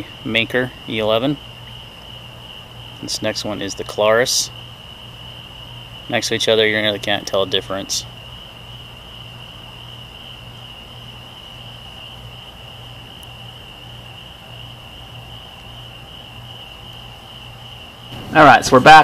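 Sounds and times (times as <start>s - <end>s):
crickets trilling: 0.0s - 19.0s.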